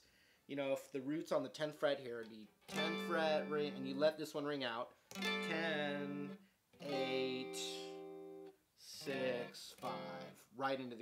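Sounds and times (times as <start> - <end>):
electric guitar chord ringing: 2.7 - 4.0, 5.1 - 10.3.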